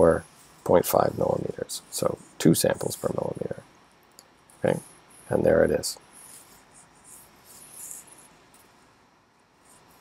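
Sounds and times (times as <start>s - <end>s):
high-pitched scratching: 4.5s - 8.7s.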